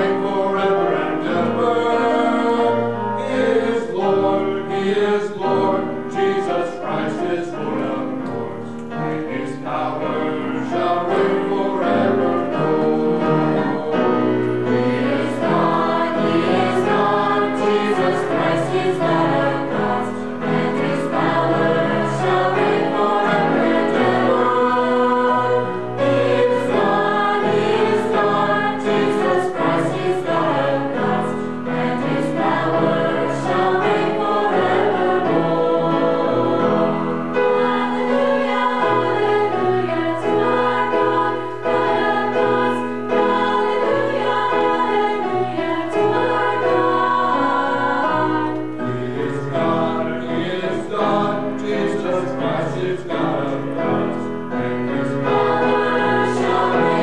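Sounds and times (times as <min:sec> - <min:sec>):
mixed choir singing in harmony: 0:00.0 - 0:57.0.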